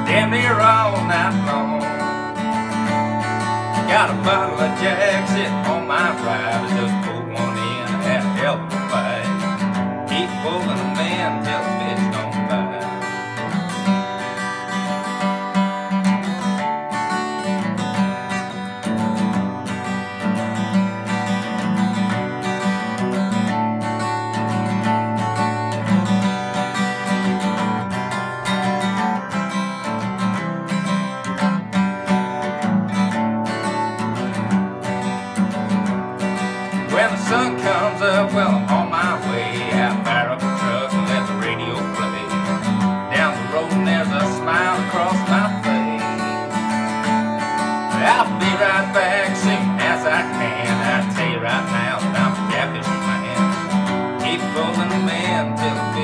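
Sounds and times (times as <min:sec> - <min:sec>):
acoustic guitar strumming: 0:00.0 - 0:56.0.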